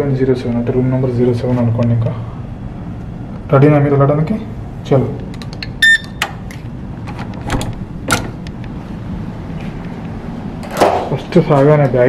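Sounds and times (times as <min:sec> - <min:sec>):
latch and handle clicks: 0:05.3 - 0:08.7
door lock beep: 0:05.8 - 0:06.3.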